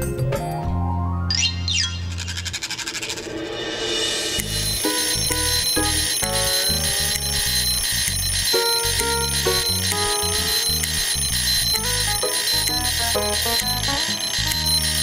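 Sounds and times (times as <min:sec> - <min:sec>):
alarm clocks ringing: 0:04.3 - 0:15.0.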